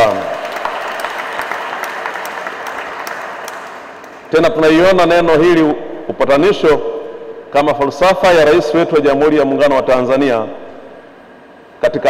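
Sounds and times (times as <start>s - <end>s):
audience applauding: 0.0s - 4.3s.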